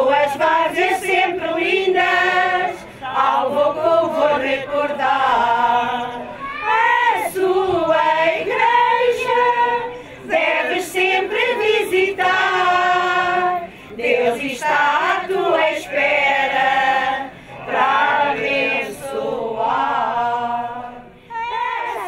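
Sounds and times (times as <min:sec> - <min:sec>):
women singing unaccompanied: 0:00.0 - 0:22.0.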